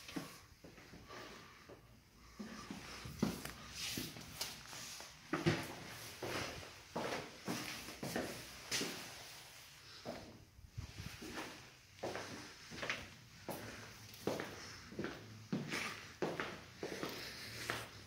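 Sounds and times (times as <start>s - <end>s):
footsteps walking indoors: 0.0s - 18.0s.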